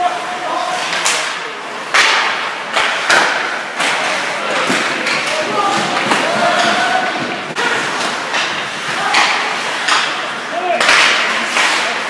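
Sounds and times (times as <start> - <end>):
hockey sticks cracking on puck: 0.5 - 12.0.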